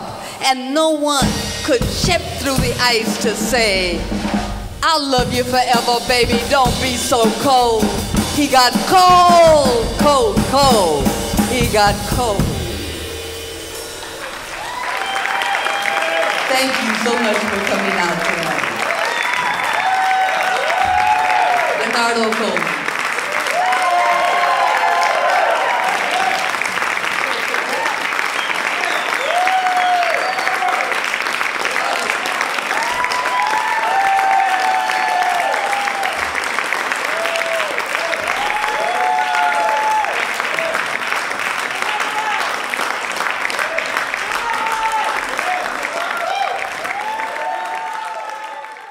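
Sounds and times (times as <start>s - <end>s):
audience applauding: 13.6s - 48.9s.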